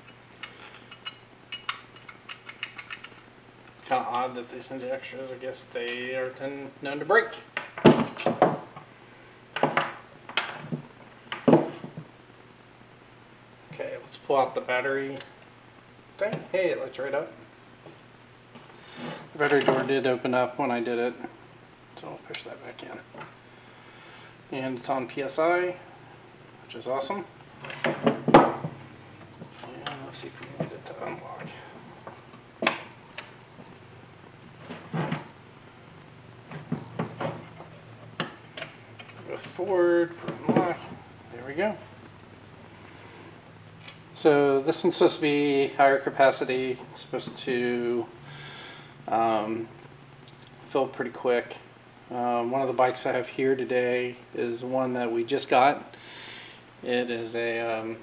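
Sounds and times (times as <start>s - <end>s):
light irregular clicks and taps: 0.0s - 4.2s.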